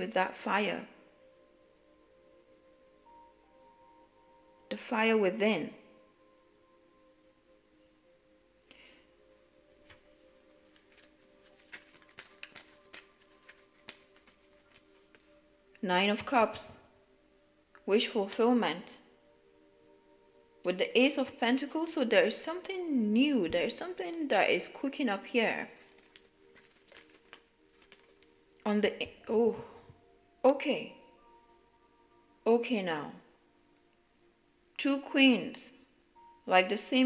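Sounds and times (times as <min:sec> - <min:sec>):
faint steady hum: 0:00.0 - 0:37.0
soft background music: 0:00.0 - 0:37.0
cards being shuffled: 0:09.8 - 0:10.1, 0:10.7 - 0:15.4, 0:25.8 - 0:28.4.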